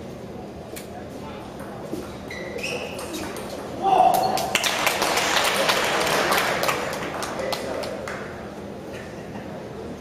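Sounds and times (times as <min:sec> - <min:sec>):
spectators applauding: 0:04.4 - 0:08.3.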